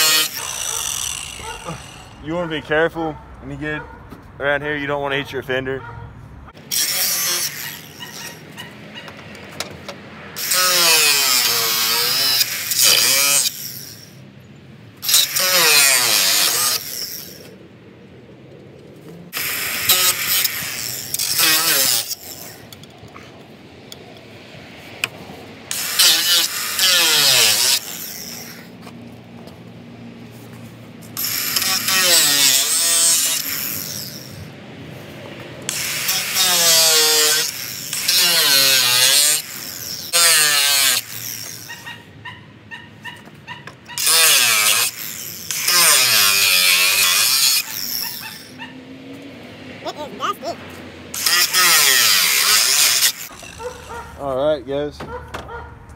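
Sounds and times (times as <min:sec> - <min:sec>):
angle grinder cutting metal: 0:00.0 - 0:02.6, 0:06.6 - 0:08.7, 0:10.4 - 0:14.2, 0:15.0 - 0:17.6, 0:19.3 - 0:22.9, 0:25.7 - 0:28.9, 0:31.0 - 0:34.6, 0:35.7 - 0:42.0, 0:43.9 - 0:48.6, 0:49.9 - 0:54.1.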